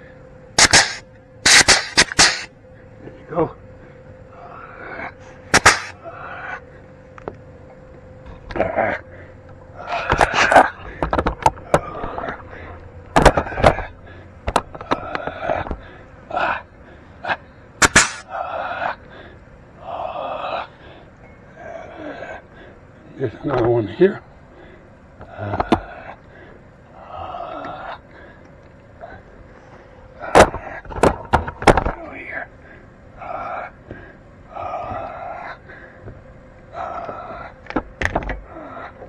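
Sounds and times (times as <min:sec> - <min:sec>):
pneumatic grease gun hissing: 0:00.6 - 0:02.5, 0:05.5 - 0:05.9, 0:17.8 - 0:18.2
sharp cracks: 0:00.6 - 0:02.5, 0:05.5 - 0:06.0, 0:17.8 - 0:18.3.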